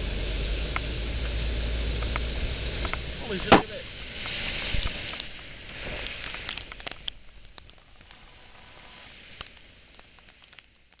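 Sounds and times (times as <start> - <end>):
heavy rain on a car: 0.0 - 11.0
raindrops ticking on glass: 6.0 - 8.6.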